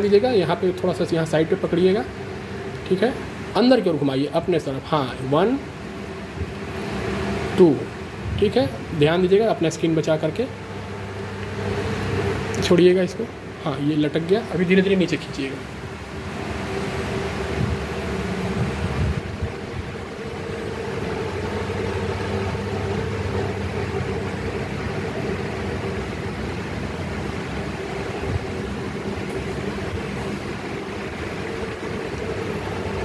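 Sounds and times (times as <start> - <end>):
machine hum with hiss: 0.0 - 33.0.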